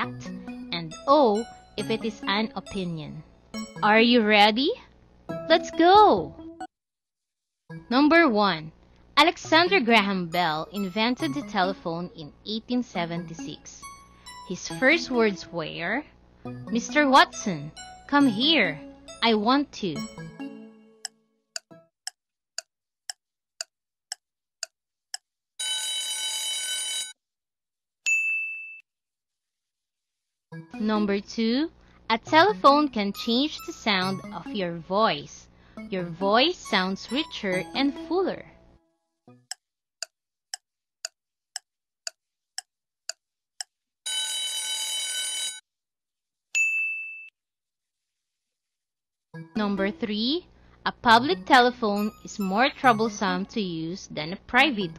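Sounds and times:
countdown timer ticks: 0:00.0 - 0:04.6, 0:05.3 - 0:06.7, 0:09.2 - 0:12.0, 0:12.8 - 0:15.6, 0:16.5 - 0:23.7, 0:32.1 - 0:34.8, 0:35.8 - 0:38.5, 0:49.4 - 0:53.6
timer ticks: 0:19.2 - 0:23.7, 0:32.3 - 0:34.6, 0:35.8 - 0:38.1.

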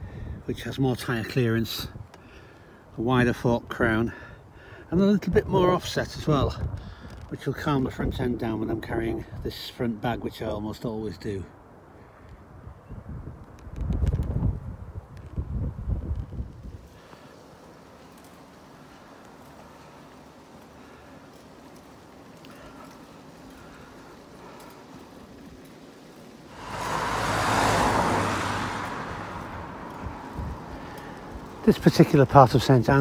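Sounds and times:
car passing close by: 0:21.5 - 0:32.2
low rumbling: 0:23.5 - 0:31.7.

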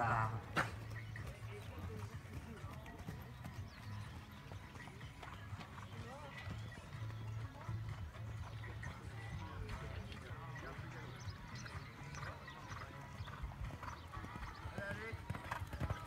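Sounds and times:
horse hoofbeats cantering on sand: 0:00.0 - 0:16.0.

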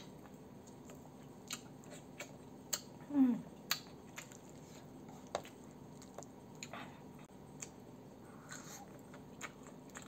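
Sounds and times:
wet chewing squishes: 0:03.6 - 0:06.8, 0:08.4 - 0:10.0.

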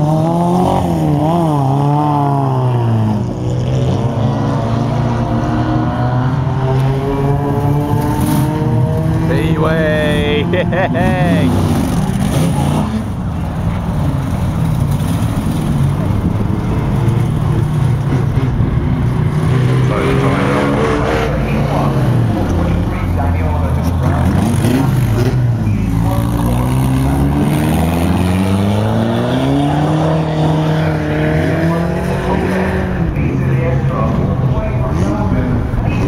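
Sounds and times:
race car engines revving: 0:00.0 - 0:36.0.

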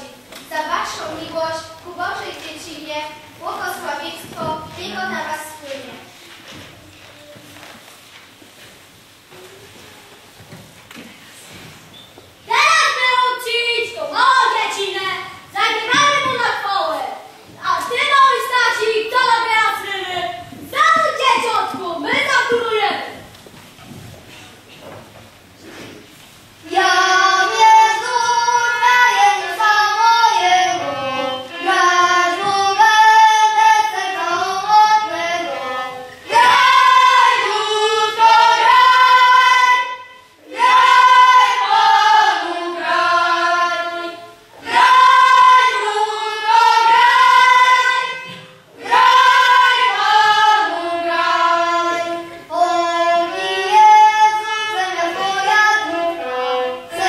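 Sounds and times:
children's choir singing a carol: 0:00.0 - 0:06.7, 0:12.5 - 0:23.3, 0:25.7 - 0:57.0
fiddle playing: 0:27.4 - 0:33.6.

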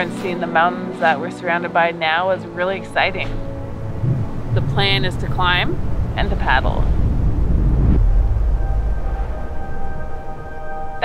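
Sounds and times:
sustained music notes: 0:00.0 - 0:11.0
wind buffeting microphone: 0:03.1 - 0:11.0.

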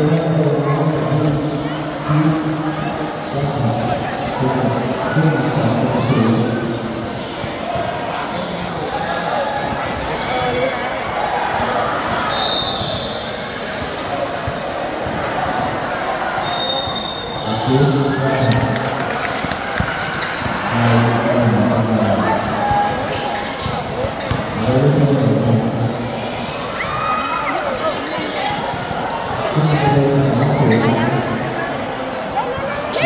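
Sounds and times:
shoe squeaks: 0:12.3 - 0:13.5, 0:15.4 - 0:18.4, 0:22.0 - 0:25.9, 0:26.7 - 0:31.2.

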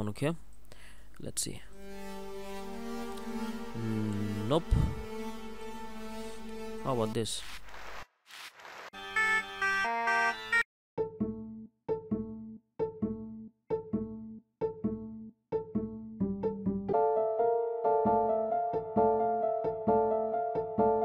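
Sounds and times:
fuller sustained synth notes: 0:01.7 - 0:07.2
plucked acoustic bass notes: 0:03.2 - 0:06.2.

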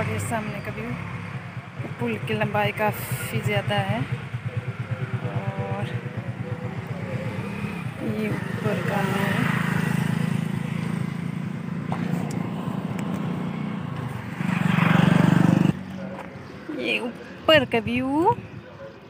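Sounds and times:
motorcycle engine passing: 0:00.0 - 0:17.2
road noise: 0:00.0 - 0:19.0.

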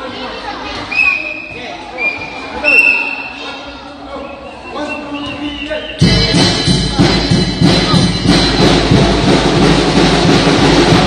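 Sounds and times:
brass band with drums: 0:05.3 - 0:11.0.

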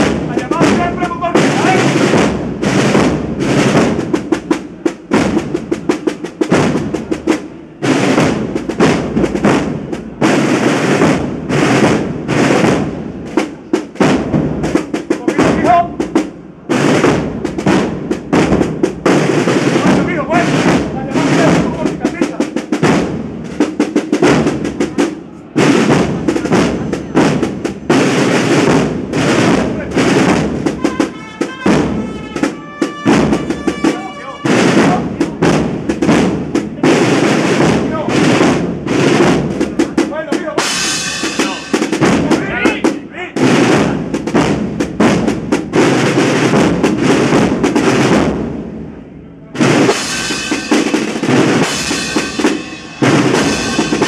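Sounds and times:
bass drum strikes: 0:00.0 - 0:25.0, 0:25.6 - 0:48.6
snare drum rolls: 0:00.0 - 0:48.8, 0:49.6 - 0:54.0
processional band playing march: 0:00.0 - 0:54.0.

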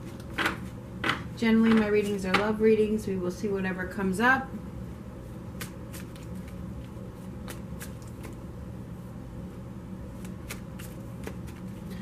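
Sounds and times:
cards being shuffled by hand: 0:05.5 - 0:08.5, 0:10.1 - 0:12.0.

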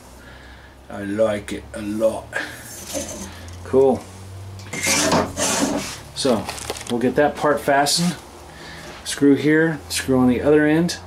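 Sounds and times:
scraping against wooden frame: 0:02.7 - 0:03.6, 0:04.6 - 0:06.0.

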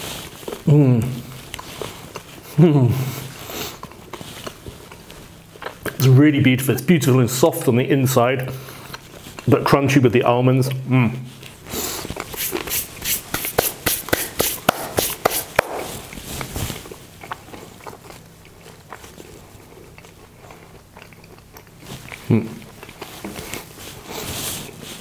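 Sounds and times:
chewing with crunching nuts: 0:00.0 - 0:09.9, 0:10.6 - 0:25.0.

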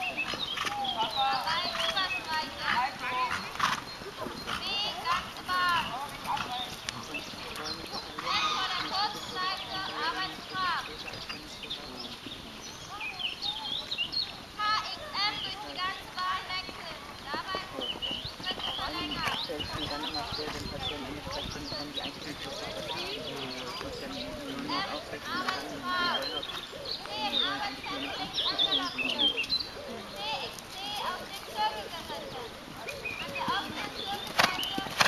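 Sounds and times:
horse hoofbeats on grass: 0:00.0 - 0:35.0
quiet talking: 0:00.0 - 0:35.0.

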